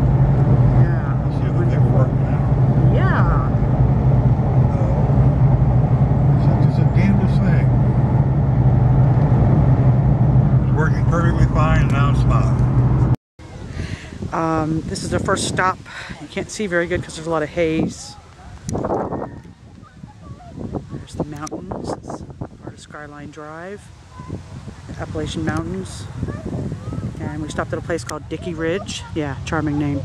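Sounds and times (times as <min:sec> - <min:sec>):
car engine and road noise: 0:00.0 - 0:30.0.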